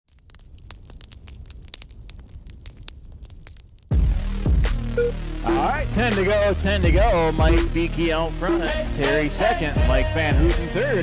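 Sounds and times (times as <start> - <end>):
fire crackling: 0.1 - 11.0
loud music: 4.0 - 11.0.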